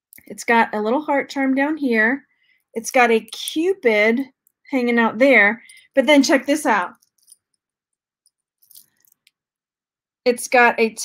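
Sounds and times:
bracelet links clinking: 6.9s - 9.4s.

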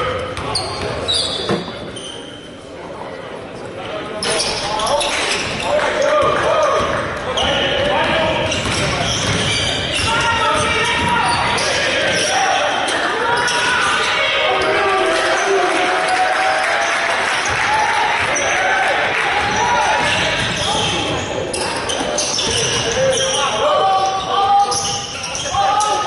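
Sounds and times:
indistinct voices in gym: 0.0s - 26.0s
basketball bouncing on court: 6.2s - 12.3s, 19.4s - 21.2s.

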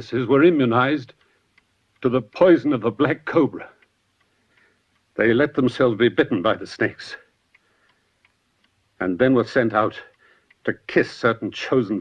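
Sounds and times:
man's voice: 0.0s - 1.2s, 2.0s - 3.8s, 5.2s - 7.3s, 9.0s - 12.0s
faint ticks: 0.7s - 5.6s, 7.1s - 12.0s.

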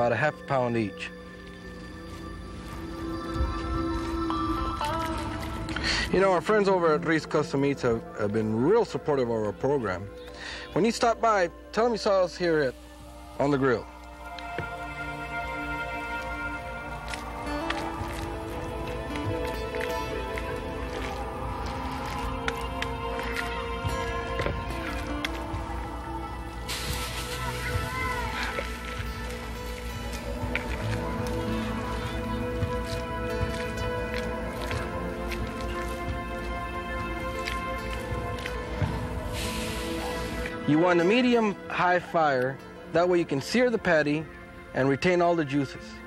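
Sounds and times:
music of sustained tones: 0.0s - 46.0s
steady hiss: 26.4s - 27.7s, 39.1s - 40.6s.

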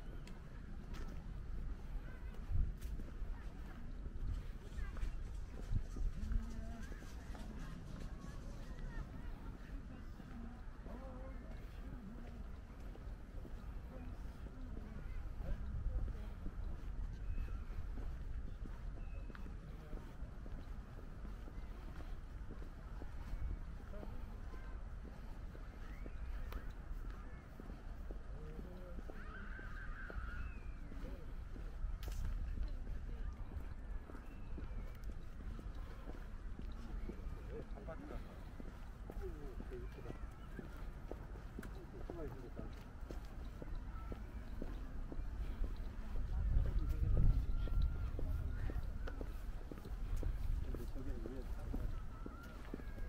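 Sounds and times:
distant indistinct voices: 0.0s - 53.0s.

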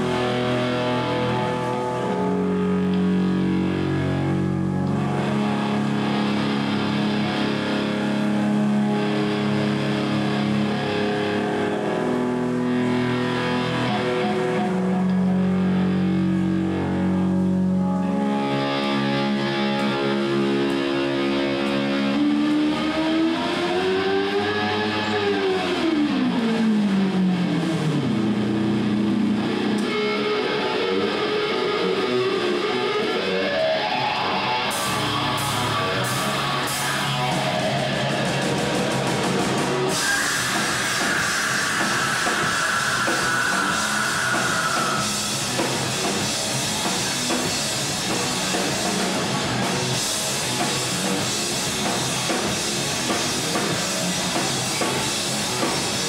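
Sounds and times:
distorted electric guitar: 0.0s - 56.0s.

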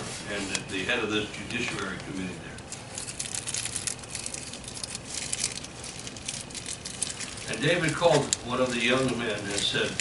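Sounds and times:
paper rustling and crinkling: 0.0s - 10.0s.

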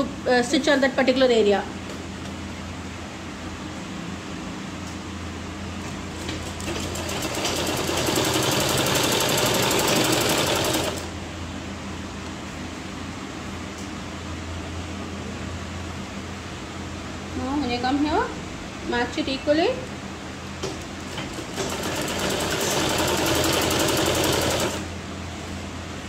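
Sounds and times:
sewing machine stitching: 6.2s - 11.1s, 21.1s - 24.9s.

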